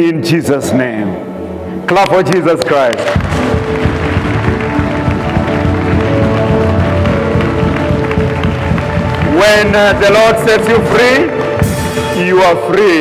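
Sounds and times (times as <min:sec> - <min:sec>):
background music held chords: 0:00.8 - 0:13.0
congregation clapping: 0:01.9 - 0:12.1.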